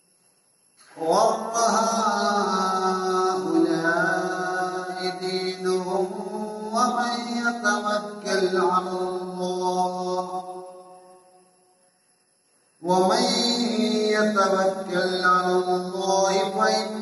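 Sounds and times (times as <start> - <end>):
man chanting melodically: 0.8 - 10.7, 12.8 - 17.0.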